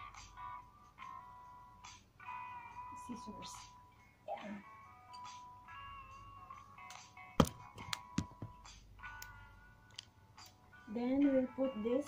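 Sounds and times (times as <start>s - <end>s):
background music: 0.0s - 12.0s
sharp knock: 7.4s - 8.5s.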